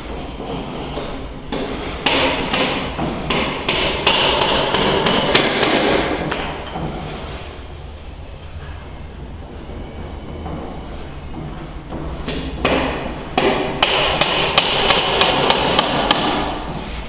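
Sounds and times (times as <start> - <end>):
rapid hammer blows: 0.0 - 7.5, 11.5 - 16.8
low steady rumble: 6.3 - 14.1.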